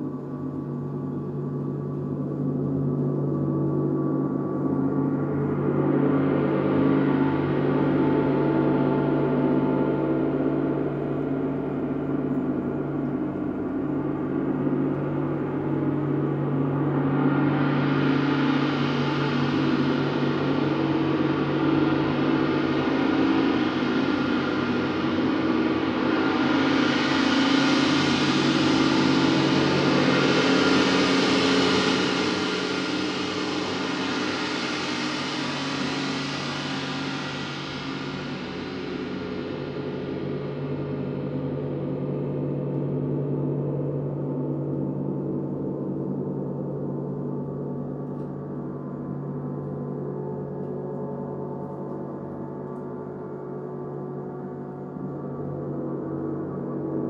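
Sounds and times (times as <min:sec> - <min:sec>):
gongs sustained tones: 0:05.1 - 0:41.6
bright shimmering gong overtones: 0:06.4 - 0:44.2.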